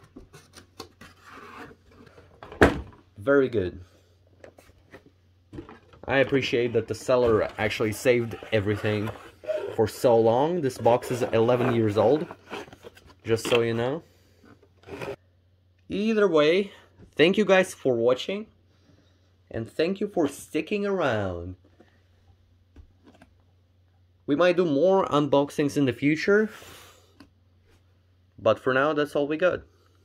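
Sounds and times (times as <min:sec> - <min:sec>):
cardboard scraping cardboard: 0:00.1 - 0:02.2, 0:04.5 - 0:13.8, 0:14.8 - 0:15.2.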